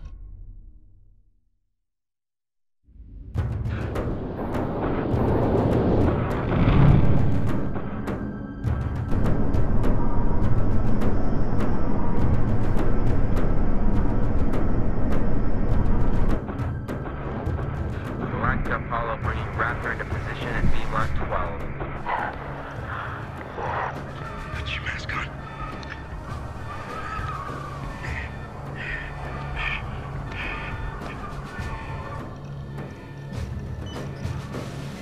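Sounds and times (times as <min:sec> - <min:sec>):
loud low rumble: 0:02.9 - 0:32.3
quiet score over low drone: 0:02.9 - 0:35.0
wordless crying: 0:25.3 - 0:32.5
strained breaths: 0:25.5 - 0:33.2.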